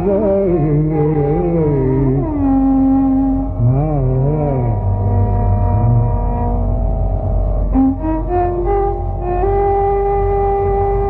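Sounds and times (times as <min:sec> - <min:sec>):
sustained drone: 0:00.0 - 0:11.0.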